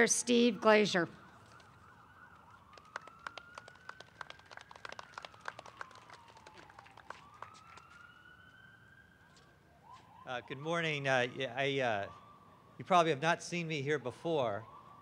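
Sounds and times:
distant emergency siren wailing: 0.0 - 15.0
audience hand claps: 2.7 - 8.0.

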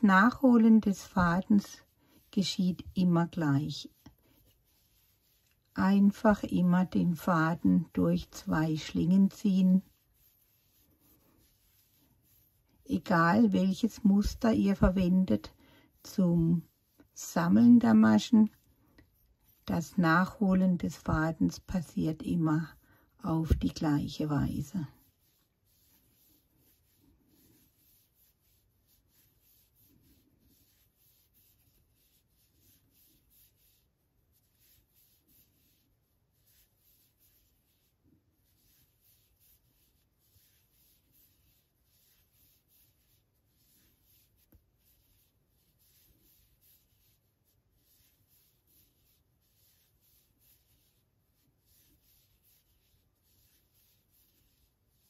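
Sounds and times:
crochet hook and yarn rustling: 0.0 - 55.0.

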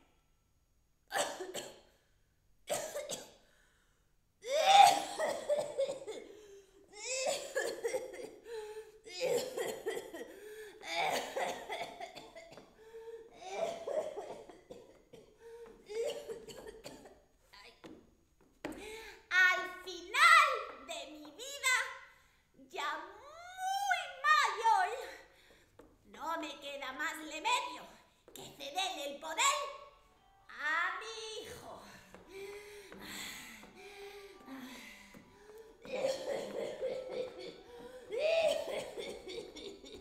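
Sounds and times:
woman coughing: 1.1 - 1.8, 2.7 - 3.4, 4.5 - 6.3, 7.0 - 8.4, 9.1 - 12.7, 13.4 - 17.2, 35.8 - 40.0
woman crying out: 4.4 - 6.2, 6.9 - 8.3, 31.5 - 40.0.

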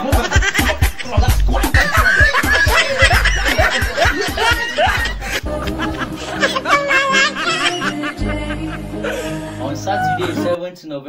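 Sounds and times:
music with fast steady beat: 0.0 - 9.6
people laughing: 0.0 - 10.6.

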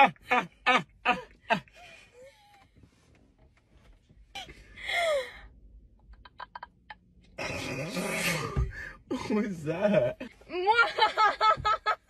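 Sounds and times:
people laughing: 10.7 - 12.0.

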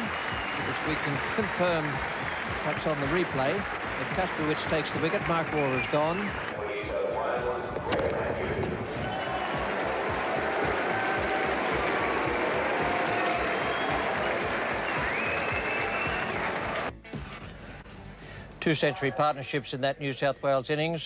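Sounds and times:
crowd applauding and cheering: 0.0 - 16.9.

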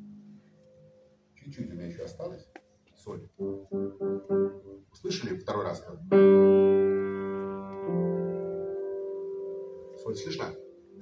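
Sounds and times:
soft low piano notes: 0.0 - 11.0.

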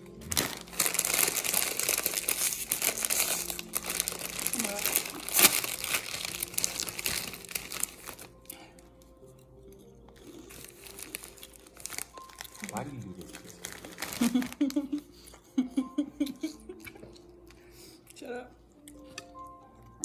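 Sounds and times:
plastic snack bag crackling: 0.0 - 8.9, 10.1 - 15.1.

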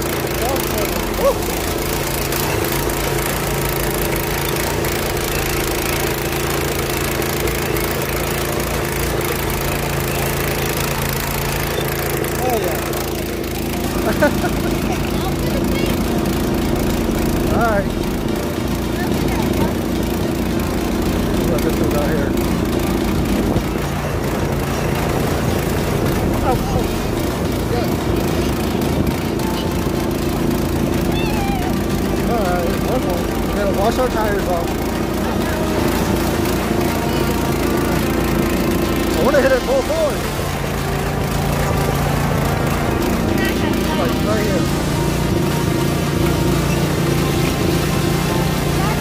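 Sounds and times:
go-kart engine running: 0.0 - 49.0.

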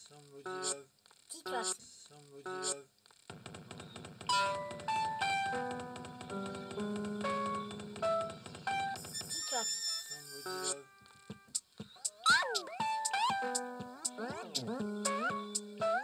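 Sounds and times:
held synthesizer notes: 4.3 - 9.1, 12.2 - 16.0.

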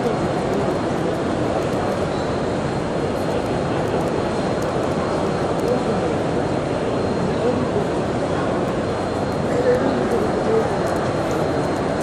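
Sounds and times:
huge crowd murmuring: 0.0 - 12.0.

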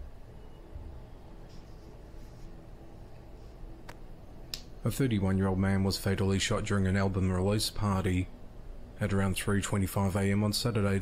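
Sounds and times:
low room hum: 0.0 - 11.0
man speaking: 4.8 - 8.3, 9.0 - 11.0.

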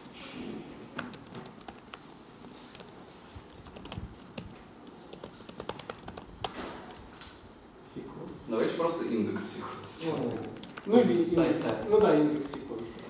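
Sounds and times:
typing on computer keyboard: 0.9 - 2.1, 3.5 - 7.0, 9.0 - 13.0.

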